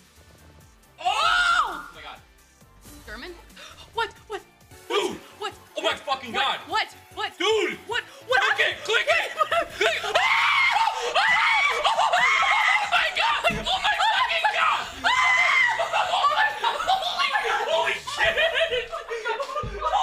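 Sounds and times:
people screaming: 1.0 - 2.0, 9.0 - 20.0
people laughing: 8.4 - 20.0.

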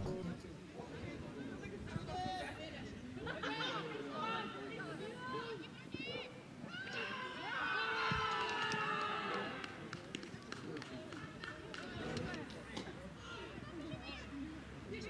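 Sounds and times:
handclaps: 8.3 - 12.9.

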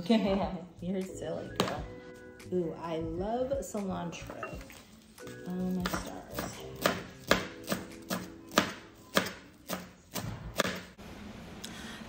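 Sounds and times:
faint background music: 0.0 - 10.9
knife chopping on cutting board: 5.8 - 10.9.

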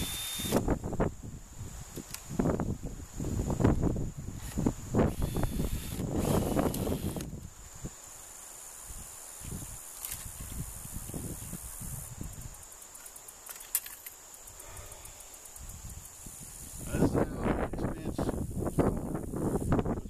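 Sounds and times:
high-pitched insect drone: 0.0 - 20.0.

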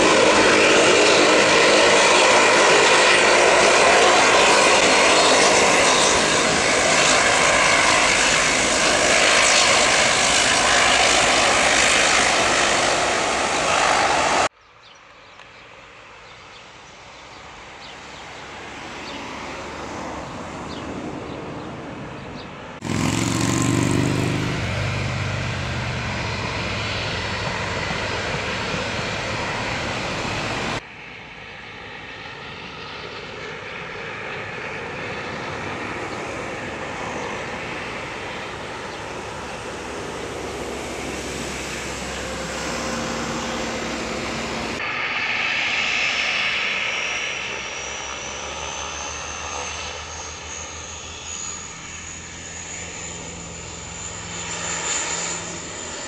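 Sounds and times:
turboprop airliner taxiing: 0.0 - 14.5, 15.6 - 56.0
high engine whine: 0.0 - 14.6, 17.0 - 56.0.

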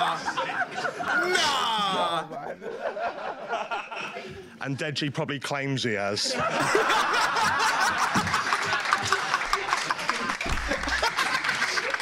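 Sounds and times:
audience laughing: 0.0 - 4.6, 6.2 - 12.0
scattered clapping: 7.4 - 12.0.

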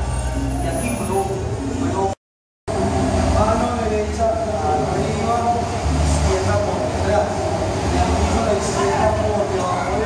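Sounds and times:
indistinct voices in a large room: 0.0 - 10.0.

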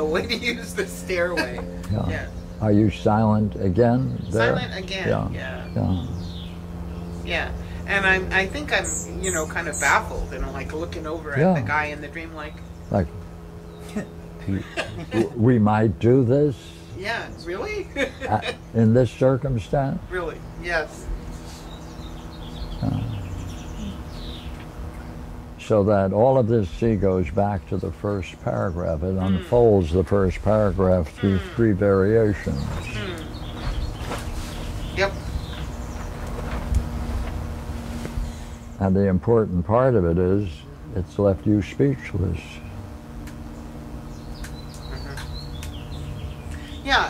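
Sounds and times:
small birds chirping: 0.0 - 47.0
steady low hum: 0.0 - 47.0
person humming: 22.8 - 24.0.

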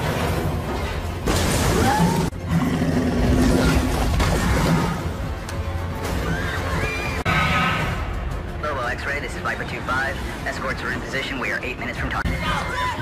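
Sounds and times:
dramatic film score: 0.0 - 13.0.

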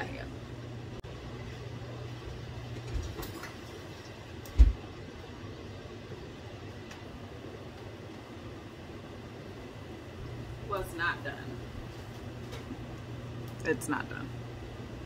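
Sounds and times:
low kitchen hum: 0.0 - 15.0.

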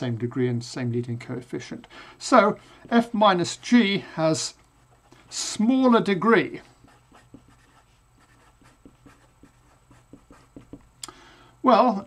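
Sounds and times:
marker pen scratching on paper: 6.7 - 10.9.

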